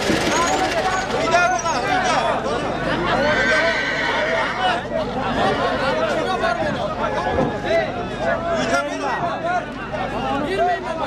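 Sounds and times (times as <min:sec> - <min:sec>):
men talking: 0:00.2 - 0:11.0
horse whinnying: 0:03.0 - 0:04.8.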